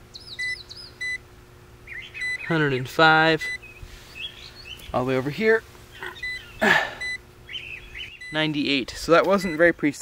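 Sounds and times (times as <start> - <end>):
small birds chirping: 0.0 - 10.0
short high beeps: 7.0 - 7.2.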